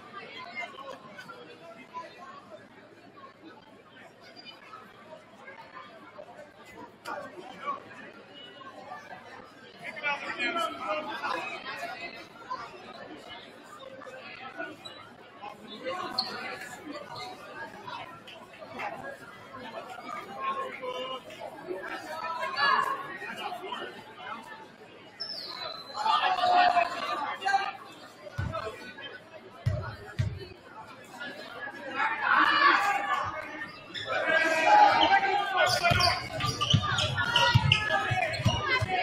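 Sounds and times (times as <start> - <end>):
crowd chatter: 0.0 - 39.0.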